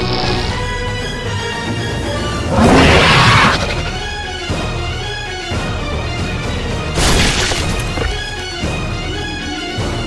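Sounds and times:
dramatic background music: 0.0 - 10.0
loud crash: 7.0 - 8.4.

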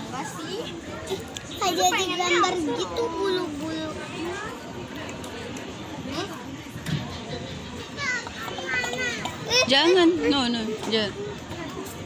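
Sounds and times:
faint voices talking: 0.0 - 12.0
outdoor background noise: 0.0 - 12.0.

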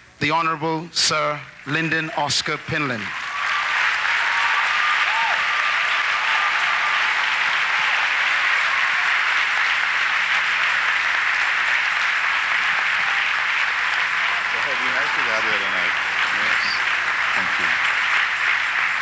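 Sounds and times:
large audience applauding: 1.6 - 19.0.

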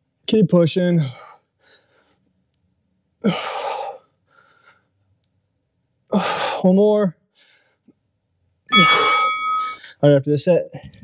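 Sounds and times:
faint breaths: 1.0 - 2.4, 3.2 - 5.2, 6.1 - 8.2.

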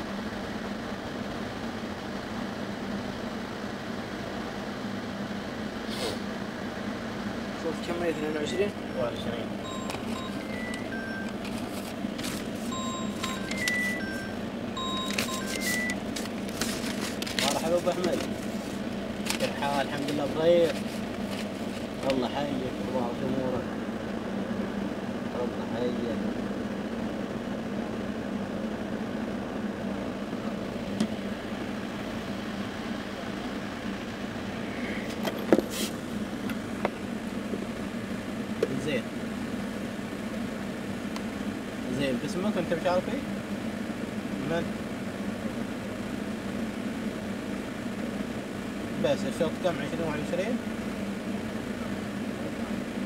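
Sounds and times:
car moving slowly: 0.0 - 53.0
vehicles rumbling: 0.0 - 53.0
electronic beeping tune: 9.6 - 11.3, 12.7 - 16.0.

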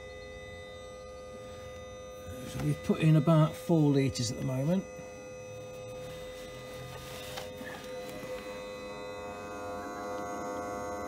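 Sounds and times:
small pump humming and whining: 0.0 - 11.0.

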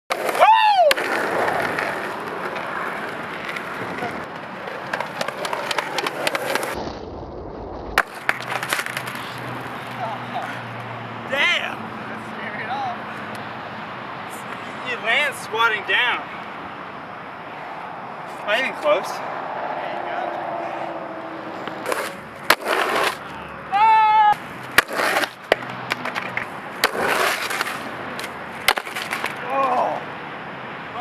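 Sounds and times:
skateboard clacks: 0.1 - 6.8, 8.0 - 9.4, 21.8 - 23.3, 24.6 - 29.8
skateboard wheels rolling on pavement: 0.1 - 31.0
person shouting: 0.3 - 1.0, 23.7 - 24.4, 29.4 - 30.1.

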